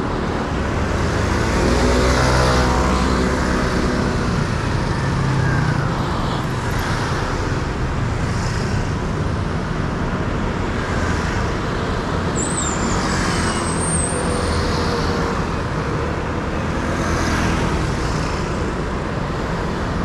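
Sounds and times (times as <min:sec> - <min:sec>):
cars and scooters passing: 0:00.0 - 0:20.0.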